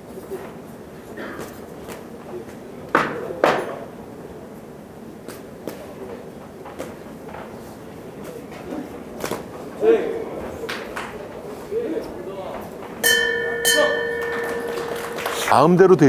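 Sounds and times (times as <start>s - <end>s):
murmur of voices: 0.0s - 16.0s.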